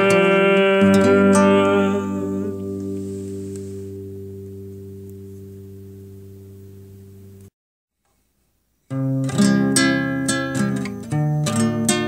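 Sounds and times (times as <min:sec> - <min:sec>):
acoustic guitar chord ringing: 0:00.0 - 0:07.5, 0:08.9 - 0:12.0.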